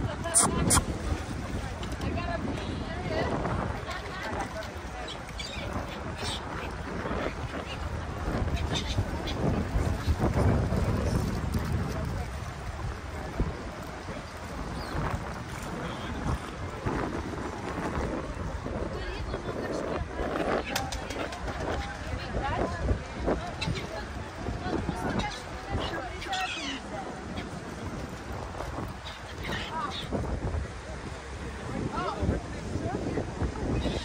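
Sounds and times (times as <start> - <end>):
indistinct voices: 0.0 - 1.0
choppy lake water: 0.0 - 34.0
wind on microphone: 0.0 - 34.0.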